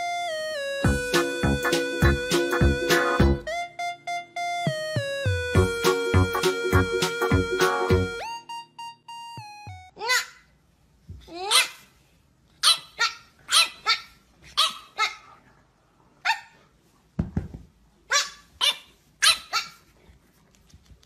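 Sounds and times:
puppy yapping: 11.3s - 11.8s, 12.6s - 15.3s, 18.1s - 19.9s.

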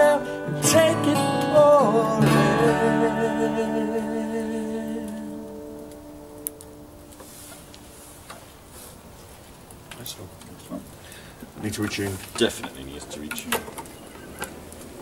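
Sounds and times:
acoustic guitar chord ringing: 0.0s - 7.1s
low background noise: 0.0s - 15.0s.

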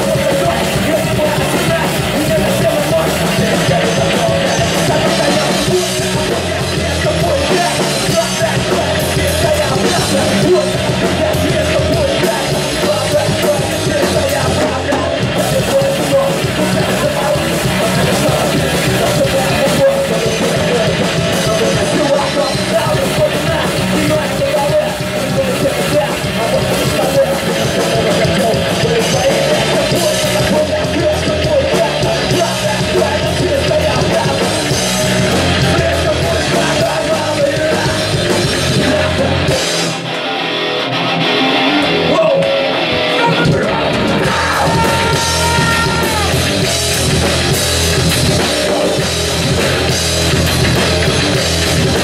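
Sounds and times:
person singing into microphone: 0.0s - 40.1s, 41.8s - 46.9s
electric guitars strumming: 0.0s - 52.0s
heavy metal band playing live: 0.0s - 52.0s.

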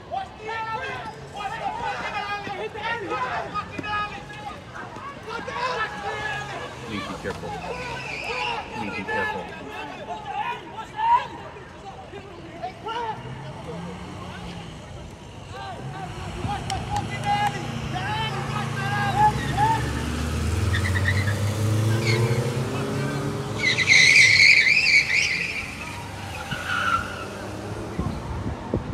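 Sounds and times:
car engine driving: 3.6s - 9.8s, 12.8s - 28.9s
high wavering tyre squeal: 7.6s - 9.4s, 17.8s - 27.8s.

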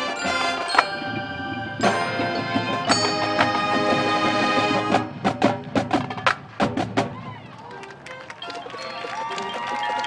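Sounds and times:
marching percussion hits: 0.0s - 7.2s
quiet sparse band music: 0.0s - 10.0s.

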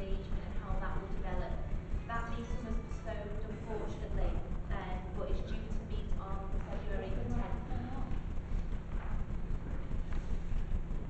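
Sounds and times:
woman speaking into a microphone: 0.0s - 8.1s
low crackling rumble: 0.0s - 11.0s.

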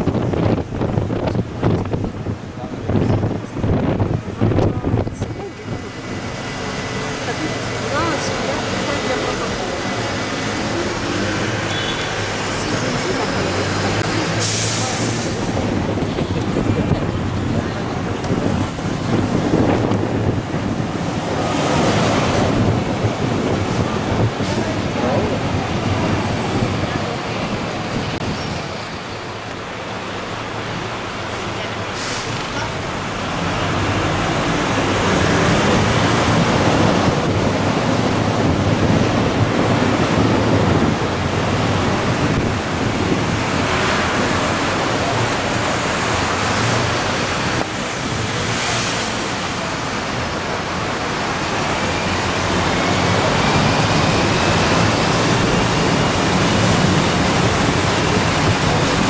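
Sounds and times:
bus engine: 0.0s - 59.0s
city traffic noise: 0.0s - 59.0s.

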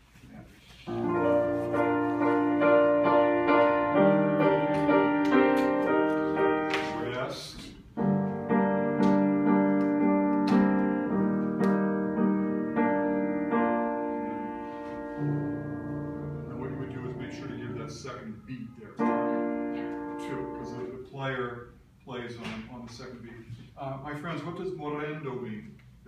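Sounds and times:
upright piano chords: 0.9s - 21.0s.

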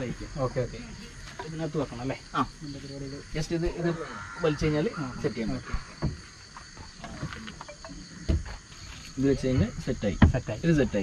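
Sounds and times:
insect chirring: 0.0s - 11.0s.

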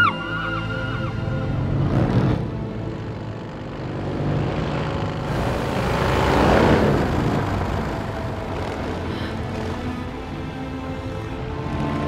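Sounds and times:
heavy vehicle engine running: 1.1s - 12.0s
rushing noise: 4.5s - 12.0s.

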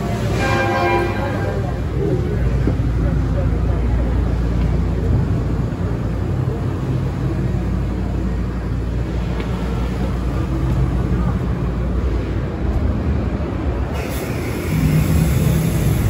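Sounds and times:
indistinct crowd voices: 0.0s - 16.0s.

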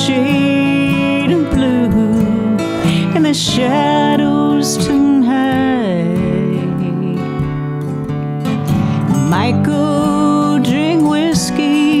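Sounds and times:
person singing: 0.0s - 7.8s, 8.7s - 12.0s
acoustic guitar: 0.0s - 12.0s.

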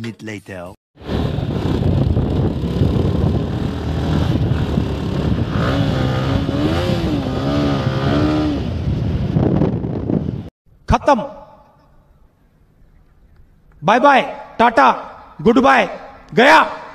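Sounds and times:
motorcycle engine running: 1.0s - 10.1s
wind on microphone: 1.0s - 10.5s.

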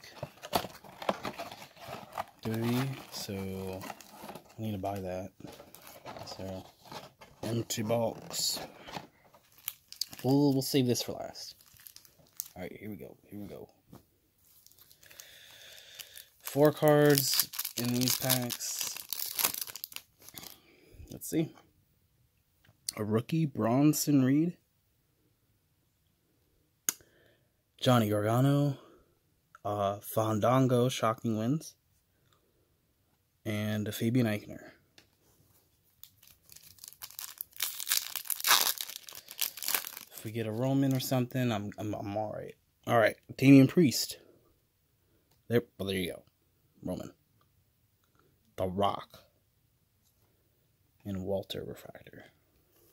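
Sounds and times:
foil wrapper crinkling and tearing: 0.0s - 10.8s, 11.4s - 12.7s, 14.6s - 20.6s, 36.0s - 41.0s.

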